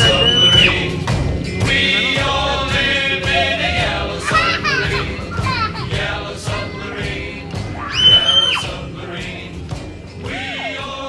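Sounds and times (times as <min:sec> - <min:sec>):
children calling and squealing: 0:00.0 - 0:00.9, 0:04.2 - 0:08.8
background music with singing: 0:00.0 - 0:11.0.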